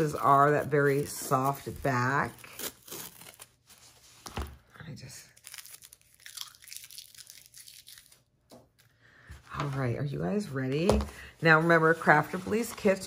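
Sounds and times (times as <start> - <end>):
tape peeling: 2.4 - 3.8.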